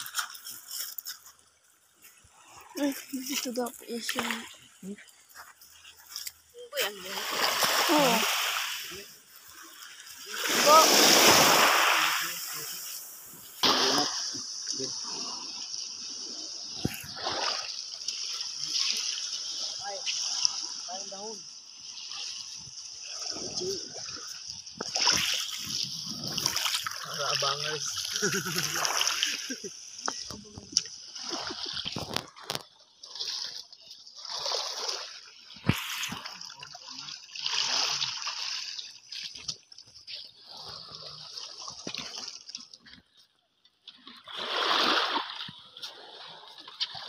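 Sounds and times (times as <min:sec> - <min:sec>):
water splashing: 0:00.0 - 0:43.2, 0:43.8 - 0:47.0
water sloshing: 0:00.0 - 0:47.0.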